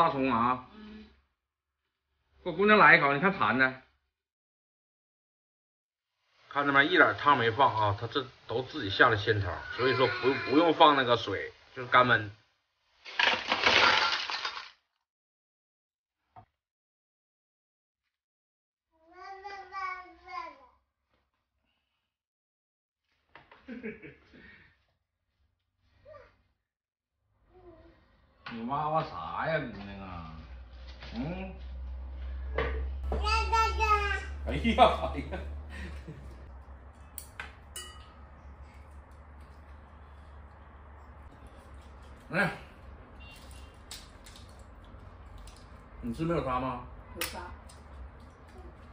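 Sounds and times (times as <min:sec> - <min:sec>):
clam shells clattering in metal bowl: 0:13.2 - 0:14.7
tableware clicking and clinking: 0:36.8 - 0:42.3.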